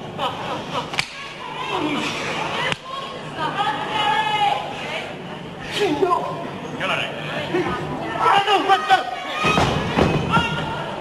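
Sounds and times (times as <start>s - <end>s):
crowd voices and shouts: 0.9s - 11.0s.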